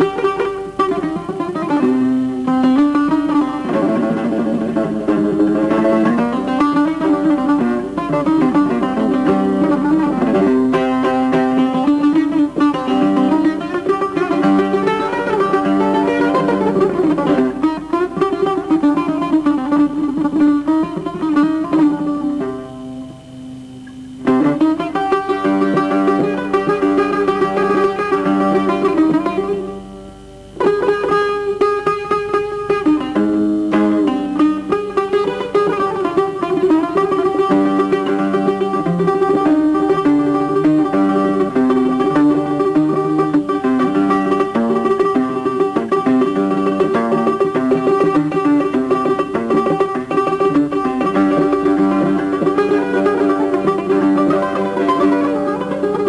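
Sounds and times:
plucked string melody: 0.0 - 56.0.

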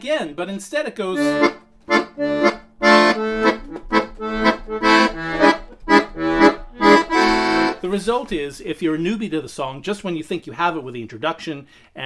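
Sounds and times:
accordion rhythmic chords: 1.0 - 8.4.

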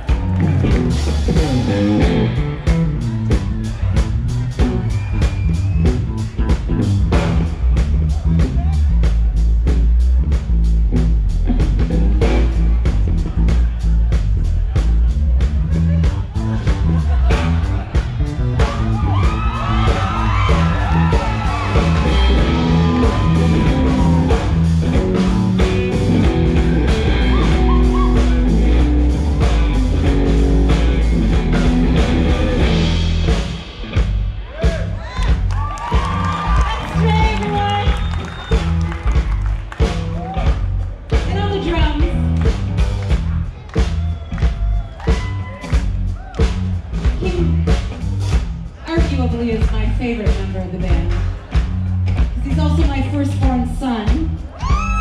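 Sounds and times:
drum beat: 0.0 - 55.0
electric bass line: 0.0 - 55.0
rock band playing: 0.0 - 55.0.

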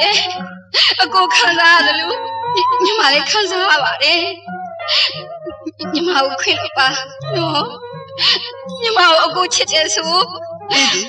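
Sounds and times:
person singing: 1.0 - 3.8, 10.7 - 11.0
held accompaniment tones: 1.0 - 11.0.

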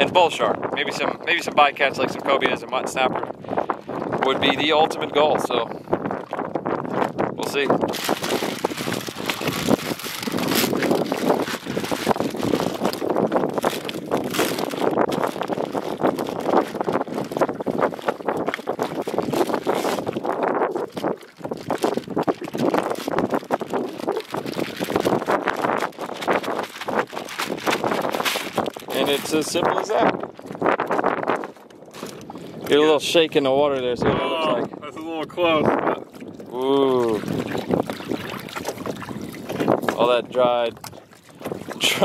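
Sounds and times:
wind buffeting microphone: 0.0 - 42.0
plastic bag rustling: 7.5 - 30.2, 31.9 - 32.4, 36.9 - 40.0.

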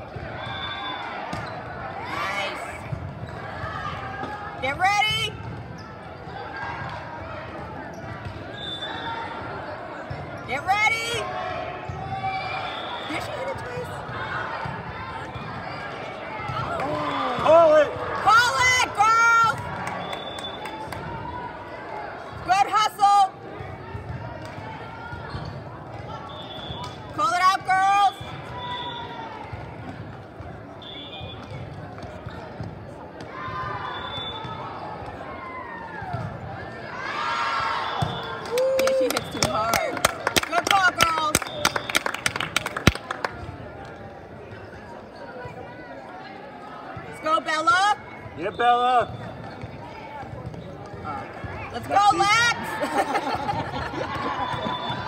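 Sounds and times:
crowd din: 0.0 - 55.0
players shouting calls: 0.1 - 5.4, 6.2 - 25.4, 26.0 - 29.9, 33.2 - 43.2, 45.3 - 55.0
ball bouncing on court: 2.8 - 8.5, 16.4 - 21.2, 36.0 - 36.5, 49.0 - 52.3.

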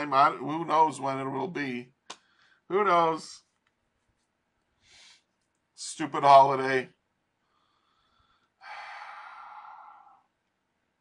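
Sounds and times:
man sighing: 8.6 - 10.3.

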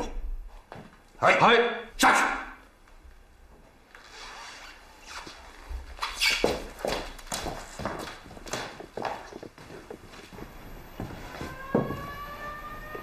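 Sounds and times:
footsteps walking: 5.0 - 13.0.

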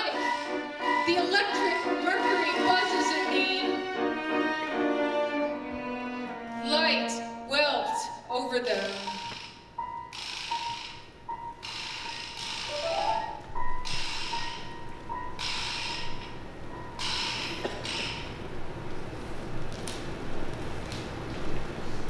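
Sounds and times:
singing and bowed strings: 0.0 - 8.0.

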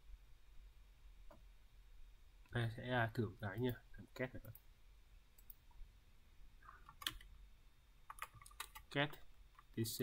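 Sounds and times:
person speaking: 2.4 - 4.7, 8.7 - 10.0
computer mouse clicks: 5.4 - 5.6, 8.1 - 9.7.

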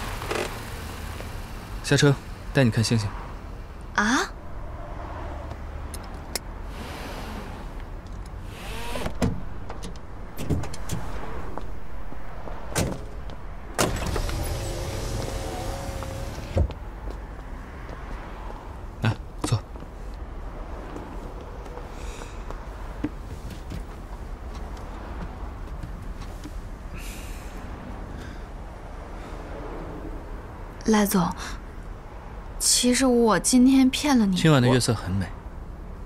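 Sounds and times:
car door opening clunk: 9.0 - 11.1, 12.7 - 16.8.

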